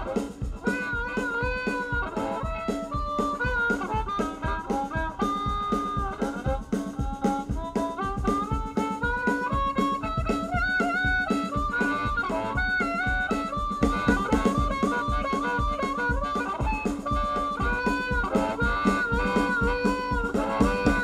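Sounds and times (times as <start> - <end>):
drum beat: 0.0 - 21.0
electric guitar: 0.0 - 21.0
harmonica solo: 0.0 - 21.0.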